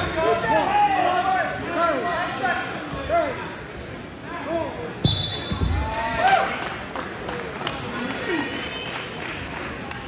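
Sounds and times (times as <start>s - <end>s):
referee's whistle blast: 5.0s - 5.7s.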